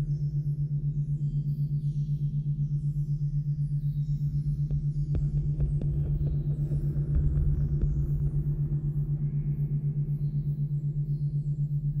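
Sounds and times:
soft ambient drone: 0:00.0 - 0:12.0
pulsing low tone: 0:04.0 - 0:12.0.

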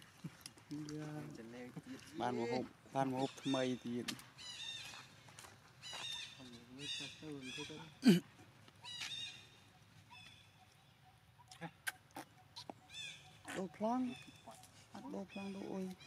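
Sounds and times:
baby monkey crying: 0:11.4 - 0:16.0.

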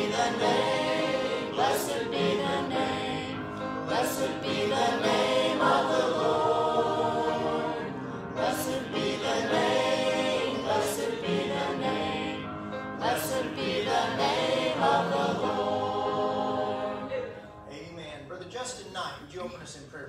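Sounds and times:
congregation singing a hymn: 0:00.0 - 0:17.5.

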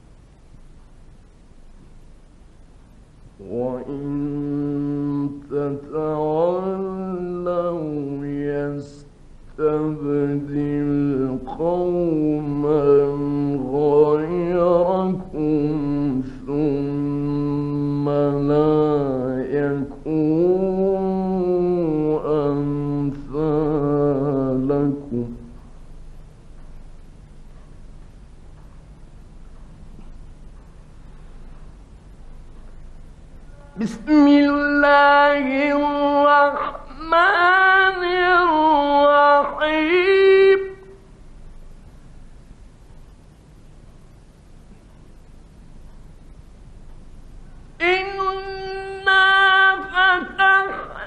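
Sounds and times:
old recording hiss: 0:00.0 - 0:51.0
man chanting a recitation: 0:03.4 - 0:25.6, 0:33.5 - 0:41.0, 0:47.8 - 0:51.0.

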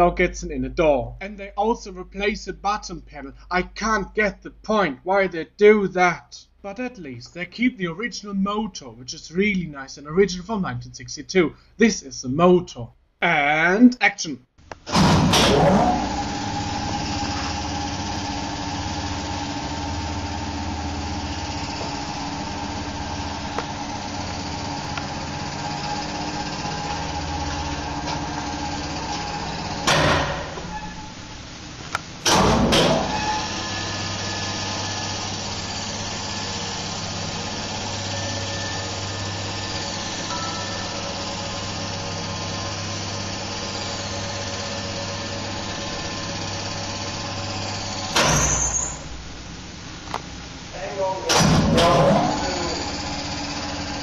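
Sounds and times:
elevator motor humming: 0:14.8 - 0:54.0
loud machine knock: 0:29.8 - 0:30.7, 0:32.2 - 0:33.2, 0:51.3 - 0:52.5.

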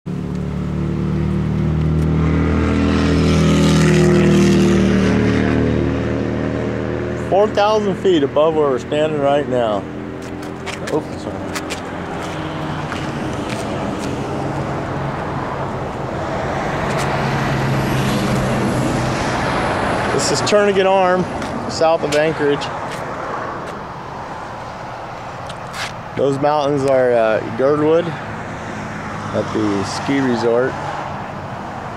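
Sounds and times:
low engine hum: 0:00.1 - 0:29.6
vehicle passing by: 0:00.1 - 0:31.9.

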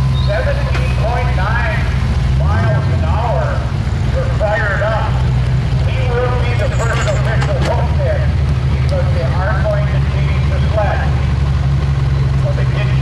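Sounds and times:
pickup engine idling: 0:00.0 - 0:13.0
people talking: 0:00.1 - 0:11.2, 0:12.4 - 0:13.0.

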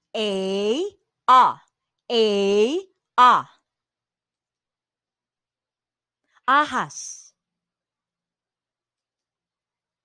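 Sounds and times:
person saying a vowel: 0:00.2 - 0:03.5.

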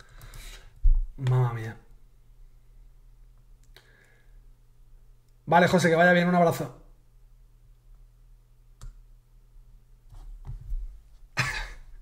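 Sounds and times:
man laughing: 0:11.4 - 0:12.0.

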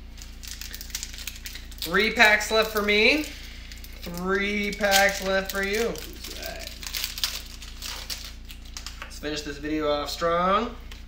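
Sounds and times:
foil wrapper crinkling: 0:00.0 - 0:09.2.

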